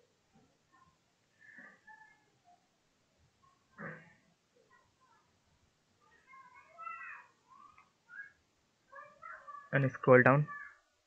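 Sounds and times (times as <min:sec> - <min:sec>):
faint animal calls: 0:06.0 - 0:09.8, 0:10.4 - 0:10.9.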